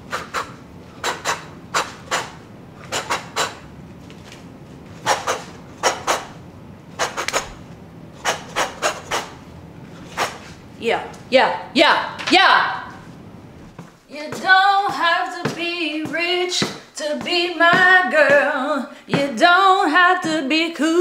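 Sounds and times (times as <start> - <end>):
sharp hissing breaths: 0.0 - 3.6, 5.0 - 6.3, 8.2 - 9.4.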